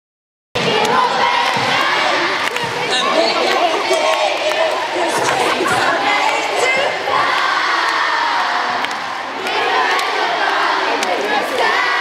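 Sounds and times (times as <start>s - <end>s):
arena audience cheering: 0.6s - 12.0s.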